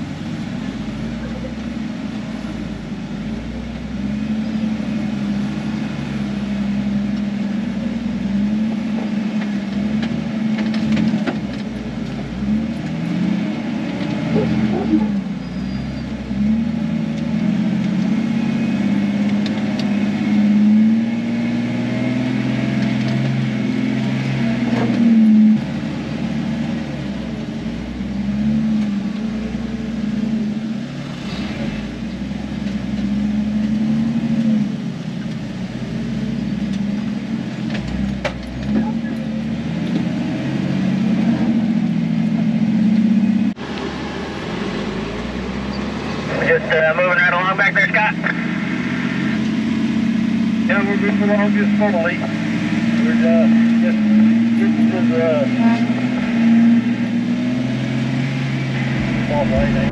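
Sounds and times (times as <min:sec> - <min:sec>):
car engine revving at low speed: 0:00.0 - 0:59.9.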